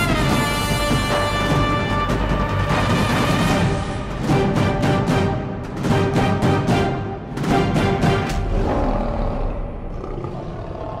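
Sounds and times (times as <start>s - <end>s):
lion roar: 8.4s - 11.0s.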